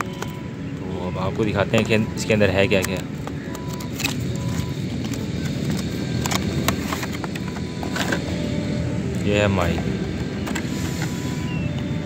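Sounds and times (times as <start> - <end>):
packaging clicks and crinkles: 1.7 - 8.2.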